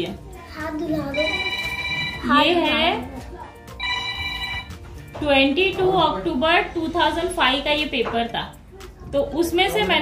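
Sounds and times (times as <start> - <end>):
telephone ringing: 1.1 - 2.5, 3.7 - 5.1.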